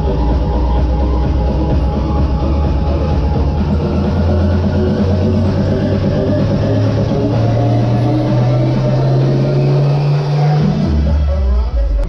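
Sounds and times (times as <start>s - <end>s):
deep bass note: 0.0s - 12.0s
loud music over sound system: 0.0s - 12.0s.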